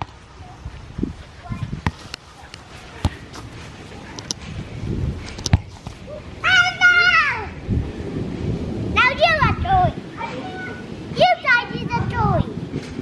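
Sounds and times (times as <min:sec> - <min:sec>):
ball kicked on grass: 0:01.7 - 0:04.5
footsteps on grass: 0:01.7 - 0:04.7.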